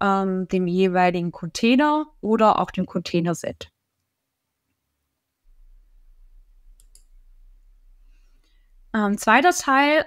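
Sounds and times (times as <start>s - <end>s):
low electrical hum: 0.0s - 10.0s
faint sharp clicks: 6.7s - 7.2s.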